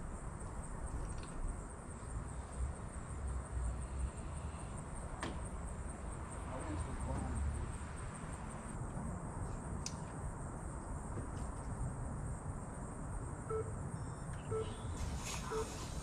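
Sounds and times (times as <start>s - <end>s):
faint insect trill: 0.0s - 16.0s
short electronic beeps: 13.5s - 15.8s.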